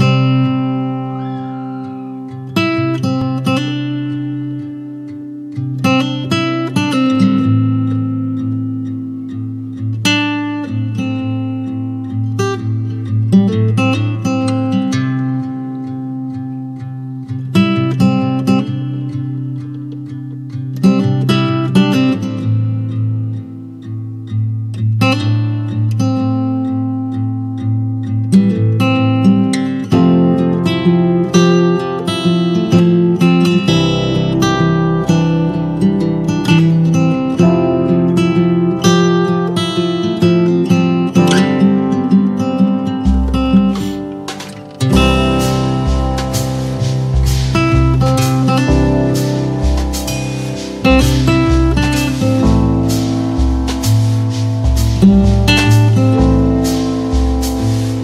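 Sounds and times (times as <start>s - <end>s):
acoustic guitar chords strummed: 0.0s - 58.0s.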